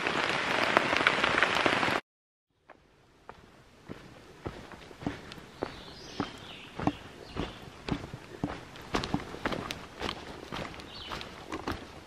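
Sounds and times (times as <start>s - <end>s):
footsteps on dirt path: 2.6s - 12.0s.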